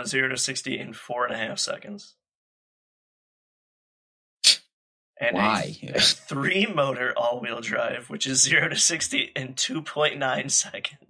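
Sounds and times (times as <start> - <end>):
voice trailing off: 5.2 - 6.2.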